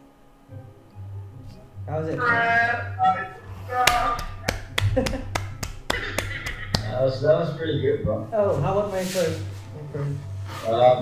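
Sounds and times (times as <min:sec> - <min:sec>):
sharp finger snaps: 0:03.9 - 0:07.0.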